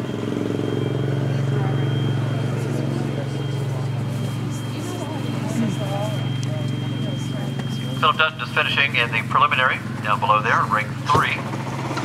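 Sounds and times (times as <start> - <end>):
low pulsing engine-like hum: 0.0 - 12.0
thin steady high tone: 0.1 - 11.1.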